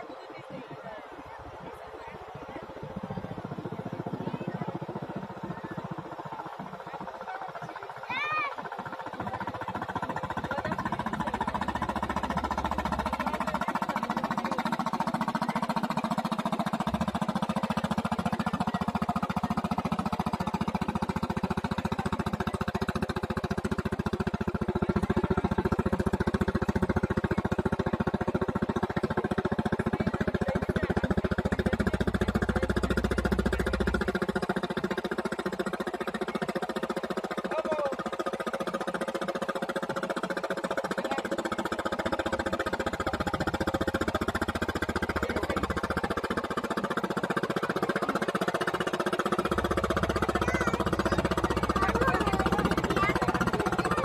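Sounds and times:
boat diesel engine thudding: 1.4s - 54.0s.

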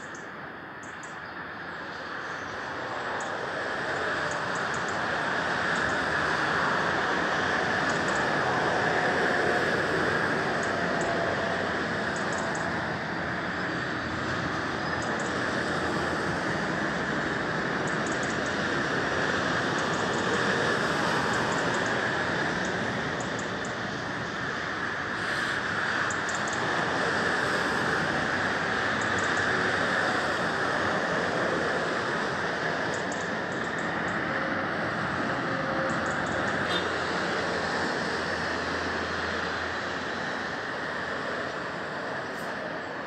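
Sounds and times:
distant motorway traffic: 0.0s - 43.0s.

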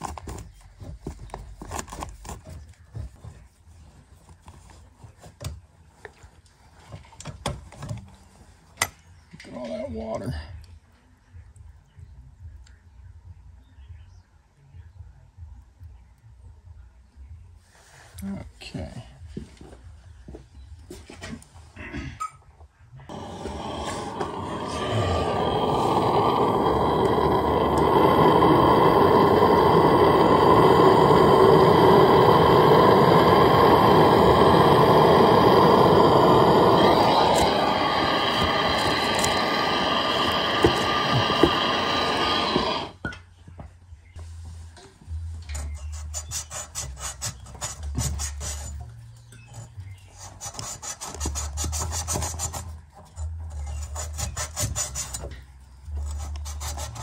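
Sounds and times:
abrasive cloth rubbing pipe: 23.1s - 43.0s
loud steady rushing noise: 23.1s - 43.0s.

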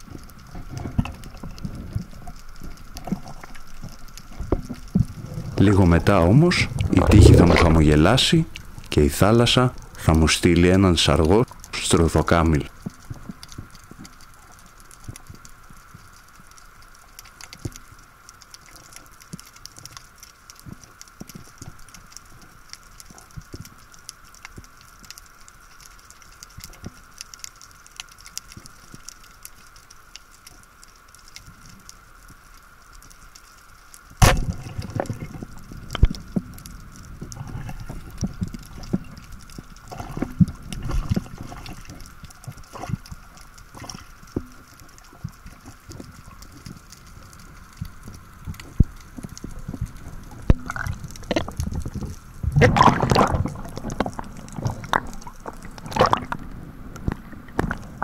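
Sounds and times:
faint crackling: 0.0s - 58.0s
underwater ambience: 0.0s - 58.0s
churning water: 5.0s - 12.7s, 49.7s - 58.0s.

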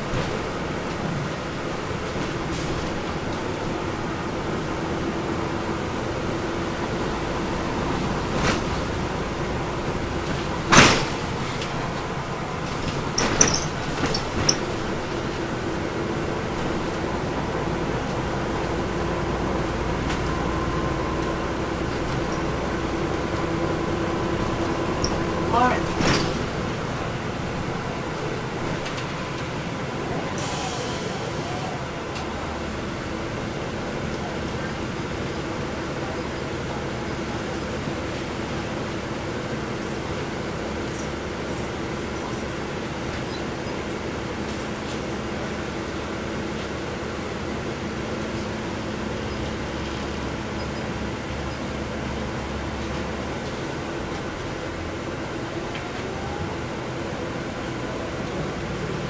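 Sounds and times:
bus engine drone and whine: 0.0s - 59.0s
road noise: 0.0s - 59.0s.

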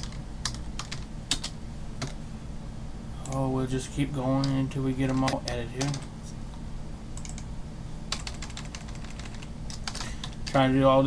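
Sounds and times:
typing on computer keyboard: 0.0s - 2.2s, 4.4s - 6.1s, 7.2s - 7.4s, 8.1s - 10.6s.

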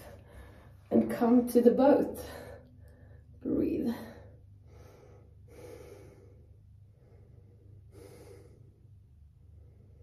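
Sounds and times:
woman breathing: 0.0s - 0.9s, 2.2s - 10.0s
faint low hum: 0.0s - 10.0s.

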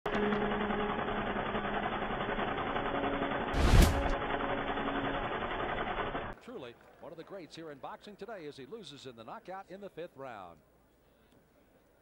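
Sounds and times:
hit with a whoosh: 3.6s - 4.2s
rough noisy rumble: 3.6s - 4.4s.

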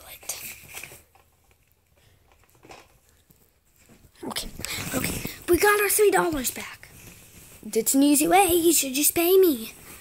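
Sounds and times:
faint rustle: 0.0s - 10.0s.

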